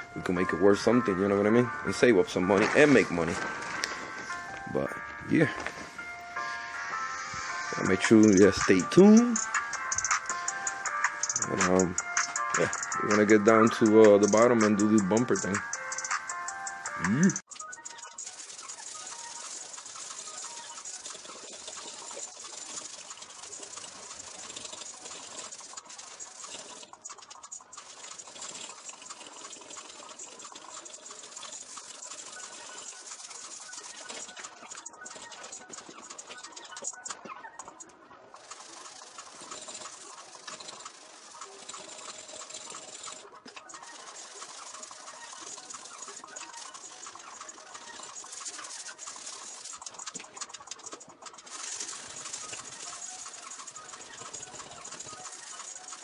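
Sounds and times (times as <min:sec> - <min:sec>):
sandpaper rasping: 0:18.2 - 0:36.9, 0:38.4 - 0:56.0.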